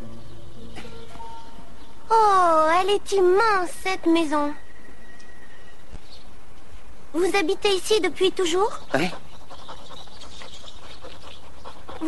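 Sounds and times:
dog panting: 8.4s - 12.0s.

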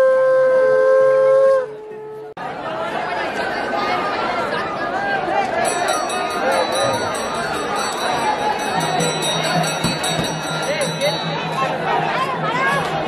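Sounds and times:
conch shells blown: 0.0s - 2.3s
crowd chatter: 1.6s - 13.0s.

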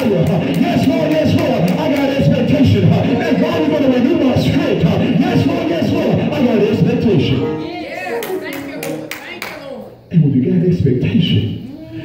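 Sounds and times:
hand clapping: 0.0s - 2.3s, 8.2s - 9.7s.

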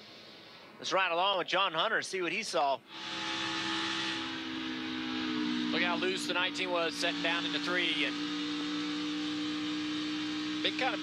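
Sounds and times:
race car engine running steadily: 2.9s - 11.0s
wind and road noise: 2.9s - 11.0s.

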